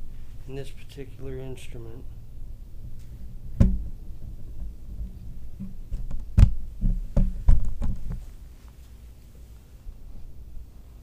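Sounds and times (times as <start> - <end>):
sharp knocks and bumps: 3.6 - 4.0, 5.6 - 8.2.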